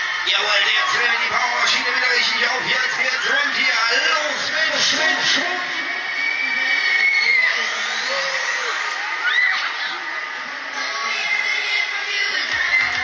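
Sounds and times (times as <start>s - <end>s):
crowd voices: 0.0s - 13.0s
riders screaming: 4.8s - 9.8s
fairground music: 10.7s - 13.0s.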